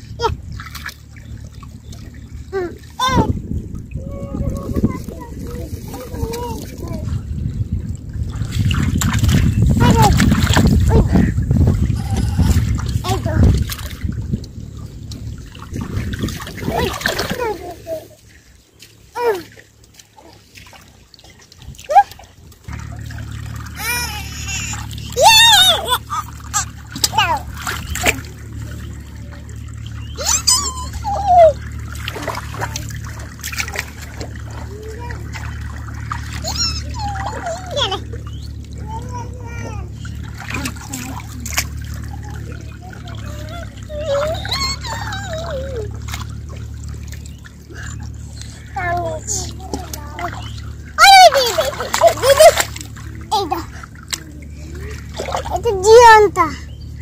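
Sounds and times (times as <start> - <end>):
shallow water splashing: 0.0 - 57.0
children crying out: 23.6 - 28.2, 30.1 - 32.7, 34.5 - 40.9, 42.0 - 46.5, 48.6 - 54.0.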